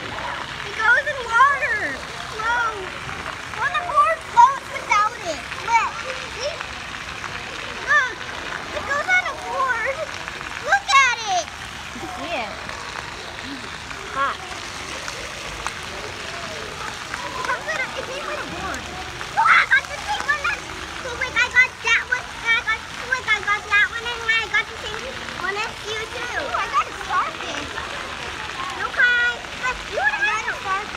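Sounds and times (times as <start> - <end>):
children calling and chattering: 0.0 - 30.9
water splashing and running: 0.0 - 30.9.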